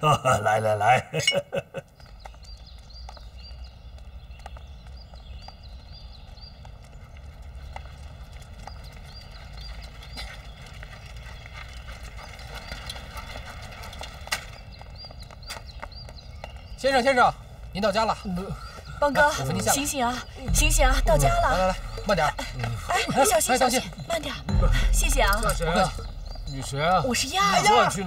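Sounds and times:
clip-clop steps: 1.8s - 28.0s
low steady rumble: 20.4s - 23.1s, 24.5s - 27.6s.

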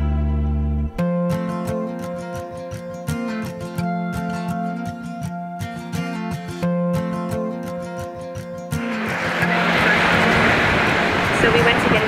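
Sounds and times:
wind buffeting microphone: 8.9s - 12.0s.

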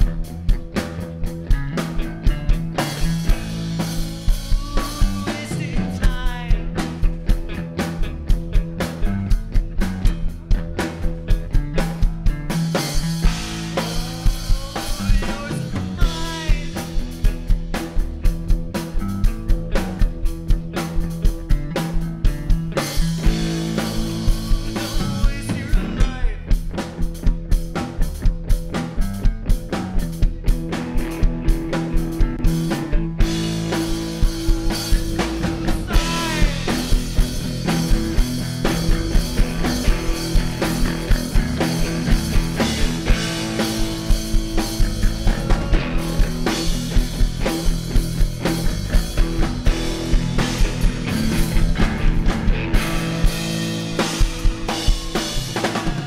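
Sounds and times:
live rock band playing: 0.0s - 56.0s
lead vocal singing: 3.8s - 6.9s, 13.5s - 17.1s, 23.7s - 26.5s, 35.1s - 37.3s.

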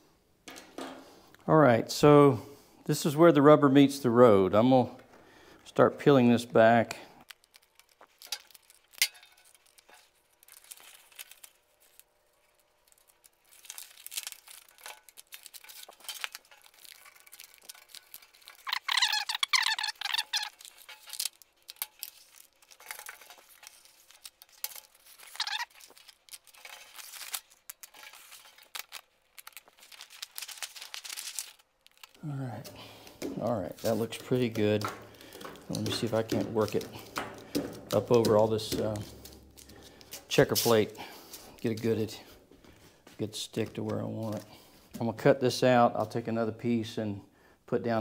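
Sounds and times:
tape backing crackling: 6.5s - 45.0s
tape ripping: 7.3s - 42.1s.

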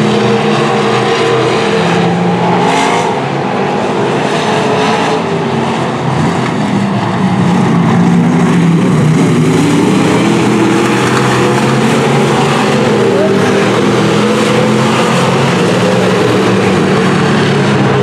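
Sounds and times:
racing car engines: 0.0s - 18.0s.

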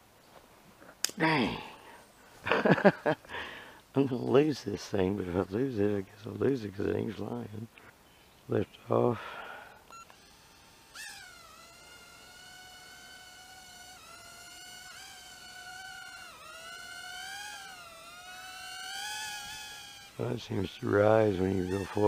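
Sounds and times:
small drone motors whining: 8.9s - 22.0s.

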